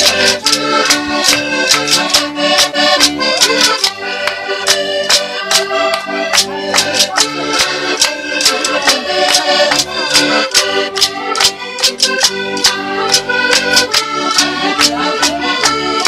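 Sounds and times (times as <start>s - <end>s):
button accordion tune: 0.0s - 16.0s
sharp percussive strokes: 0.0s - 16.0s.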